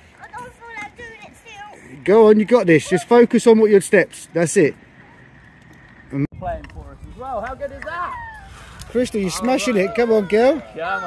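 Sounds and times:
distant people talking and calling: 0:00.0 - 0:11.0.

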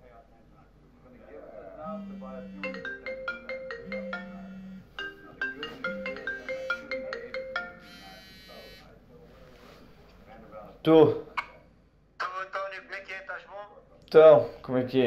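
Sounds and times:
marimba phone ringtone: 0:01.8 - 0:08.8.

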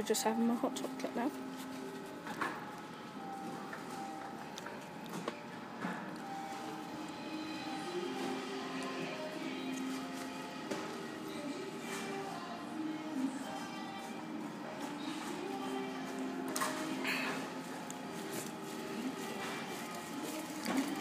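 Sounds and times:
faint background music: 0:00.0 - 0:21.0
room hum: 0:00.0 - 0:21.0.

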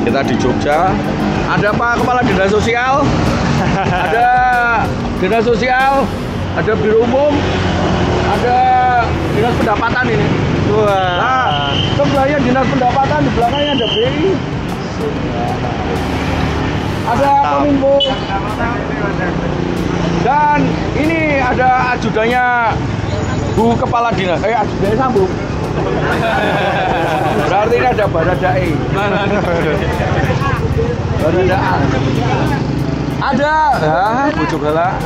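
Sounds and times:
crowd chatter: 0:00.0 - 0:35.0
people talking over one another: 0:00.0 - 0:35.0
rumble of traffic: 0:00.0 - 0:35.0.

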